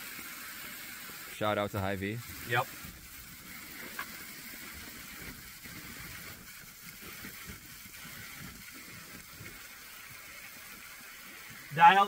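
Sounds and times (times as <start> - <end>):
bacon sizzling in a pan: 0.0 - 12.0.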